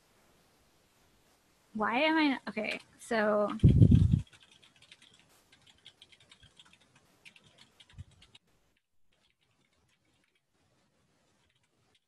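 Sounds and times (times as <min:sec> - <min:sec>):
computer keyboard typing: 0:02.6 - 0:08.4, 0:09.1 - 0:10.4, 0:11.4 - 0:12.0.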